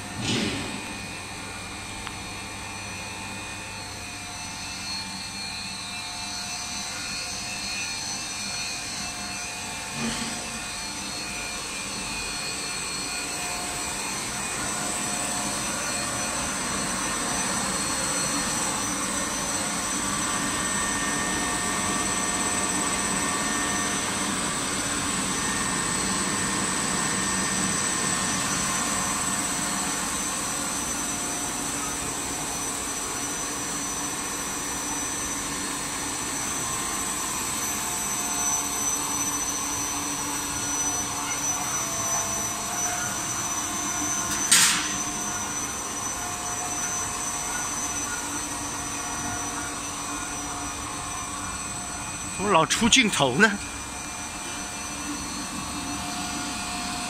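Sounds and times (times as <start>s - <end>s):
extrusion machine hiss and hum: 0.0s - 52.4s, 53.6s - 57.0s.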